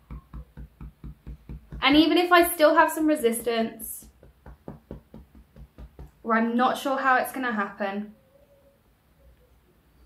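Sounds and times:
fingertips tapping on body: 0.0 - 2.2, 4.0 - 6.2.

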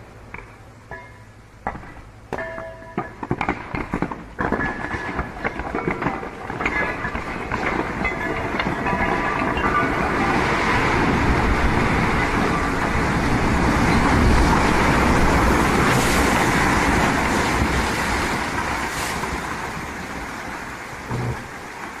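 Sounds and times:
rock and earth crashing down: 3.1 - 12.7, 14.3 - 20.2.

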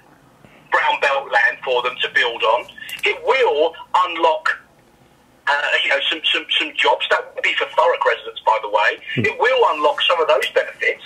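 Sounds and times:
man speaking: 0.7 - 4.6, 5.5 - 11.0.

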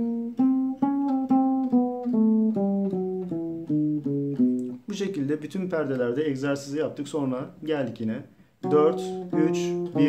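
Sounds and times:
plucked acoustic guitar notes: 0.0 - 5.0, 8.6 - 10.0.

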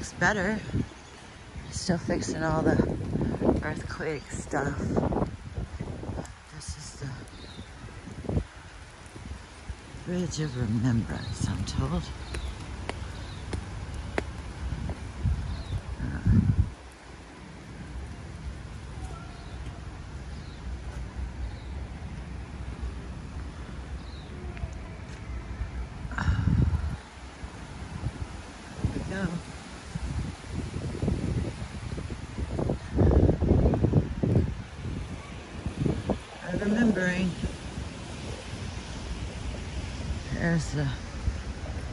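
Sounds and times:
wind buffeting microphone: 0.0 - 41.9.

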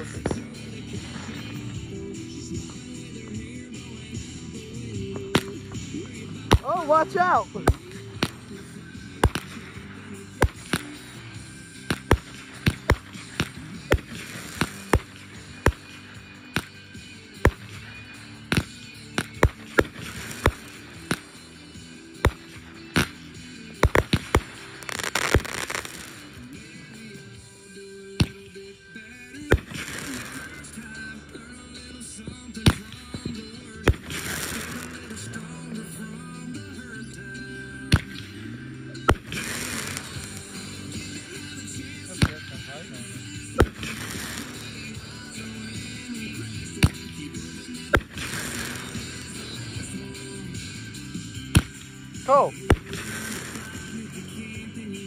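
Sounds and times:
fireworks bangs and pops: 0.0 - 27.6, 28.2 - 31.4, 32.0 - 36.8, 37.8 - 55.0
music playing: 0.0 - 55.0
fireworks hissing rush: 5.2 - 27.6, 28.2 - 31.2, 32.6 - 35.9, 39.0 - 54.5.

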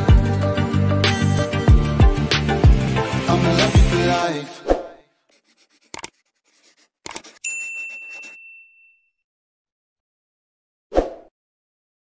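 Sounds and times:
sharp mouse click: 5.9 - 6.2, 7.1 - 7.4
notification bell ding: 7.4 - 9.1.

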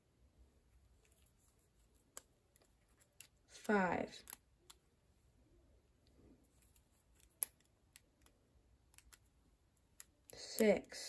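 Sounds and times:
rubber bands clicking and snapping: 2.0 - 4.8, 6.6 - 10.9.

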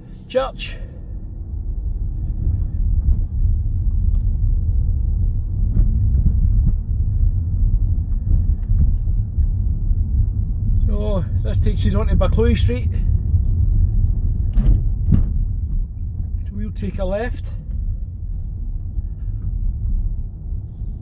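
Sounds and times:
car engine and tyre rumble: 0.0 - 21.0.

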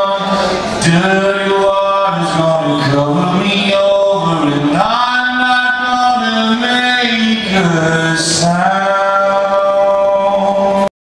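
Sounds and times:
man singing a held note: 0.0 - 10.9.

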